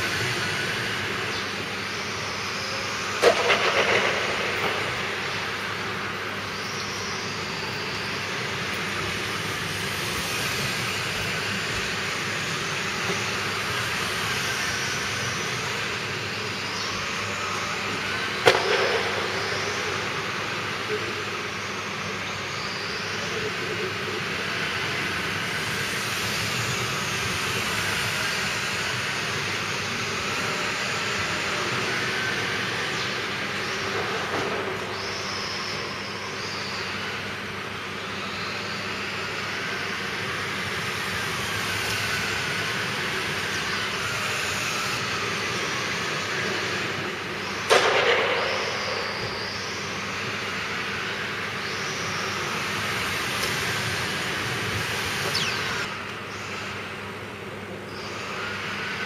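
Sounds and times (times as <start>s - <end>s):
electric toy car motors whining: 0.0s - 47.7s, 48.6s - 59.0s.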